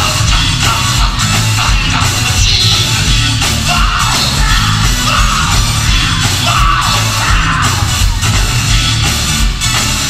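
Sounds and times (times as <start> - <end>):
bass line: 0.0 - 10.0
gospel band playing: 0.0 - 10.0
lead singer shouting: 1.7 - 8.2.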